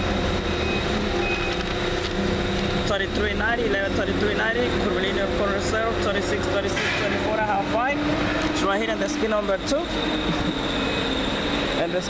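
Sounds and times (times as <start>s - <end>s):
vehicle engine rumble: 0.0s - 11.9s.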